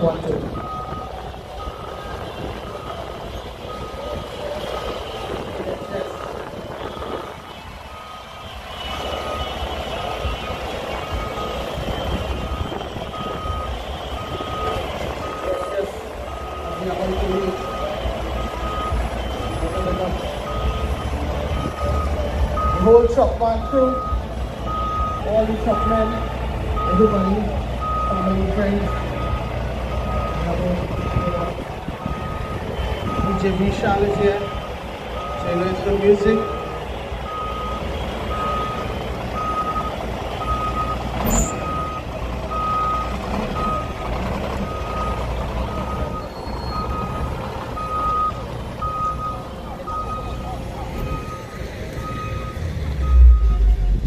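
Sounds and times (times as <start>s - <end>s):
heavy truck engine running: 0.0s - 54.0s
truck reversing alarm beeping: 0.0s - 54.0s.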